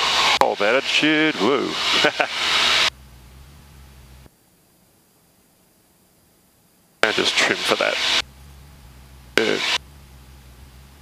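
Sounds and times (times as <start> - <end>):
small plane engine drone: 0.0 - 4.3, 7.0 - 11.0.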